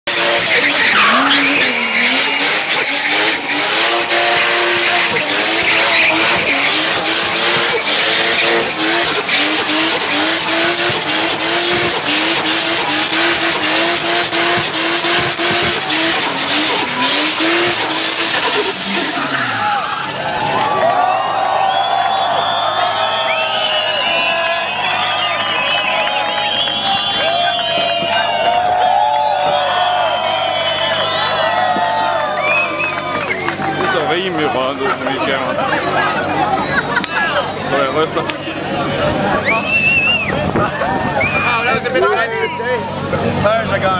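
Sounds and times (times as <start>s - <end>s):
tyres screeching: 0.0s - 20.3s
car engine revving high: 0.0s - 20.6s
crowd cheering and whistling: 0.0s - 34.3s, 39.2s - 43.2s.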